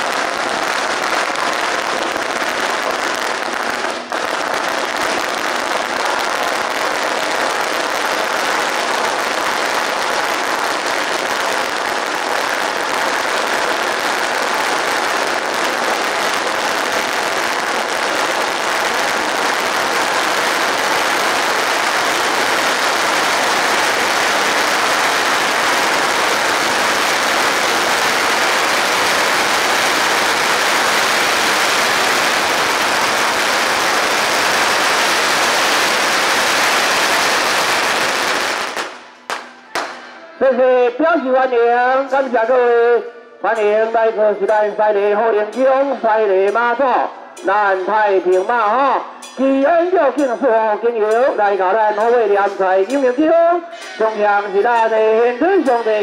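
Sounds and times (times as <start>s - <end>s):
firecrackers crackling rapidly: 0.0s - 56.0s.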